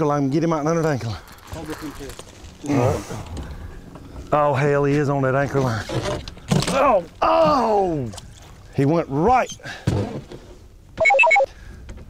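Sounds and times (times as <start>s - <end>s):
electronic beeping melody: 11.0s - 11.5s.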